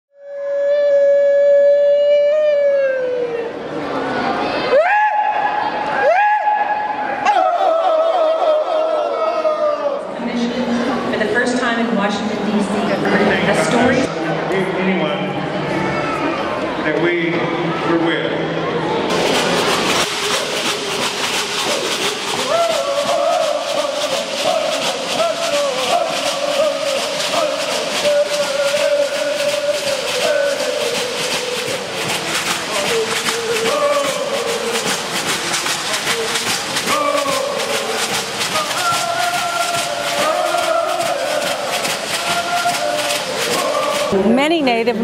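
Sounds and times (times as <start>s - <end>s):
shell leg rattles shaking: 19.1s - 44.2s
voices chanting together: 19.2s - 44.2s.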